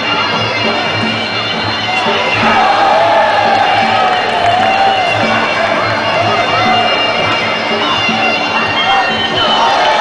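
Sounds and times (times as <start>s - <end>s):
crowd cheering: 0.0s - 10.0s
steady drum beat: 0.7s - 10.0s.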